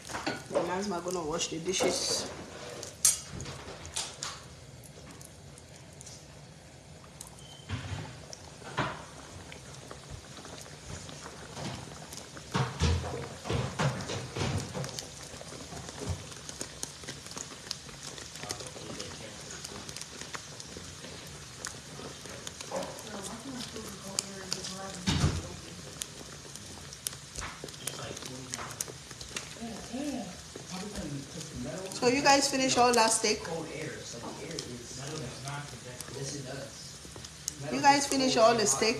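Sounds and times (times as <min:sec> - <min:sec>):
food sizzling in hot oil: 0:00.0 - 0:38.9.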